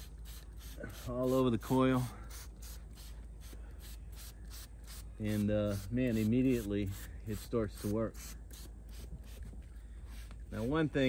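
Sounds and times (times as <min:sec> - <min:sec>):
spray bottle squirts: 0:02.3 - 0:07.0.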